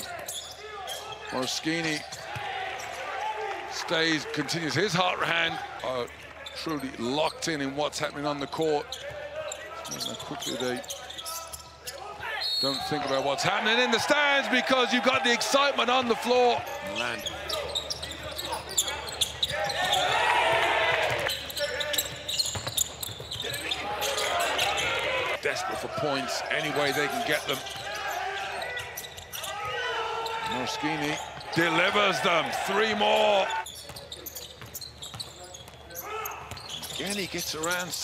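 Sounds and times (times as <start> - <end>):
voices calling out: 9.5 - 34.5
basketball bouncing on court: 17.9 - 24.8, 33.8 - 37.4.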